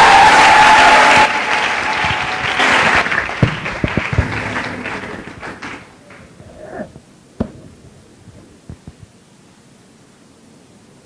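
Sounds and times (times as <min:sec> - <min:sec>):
room noise: 0:00.0 - 0:10.6
dull thumps: 0:03.4 - 0:09.2.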